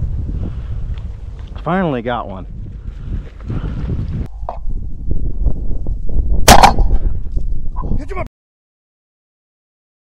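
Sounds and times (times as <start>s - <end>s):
wind rumbling on microphone: 0.0s - 8.3s
shotgun blast: 6.4s - 7.0s.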